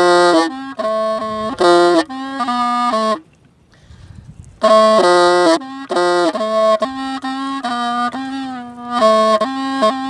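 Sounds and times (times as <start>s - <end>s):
bamboo flute playing slow tune: 0.0s - 3.8s, 4.6s - 10.0s.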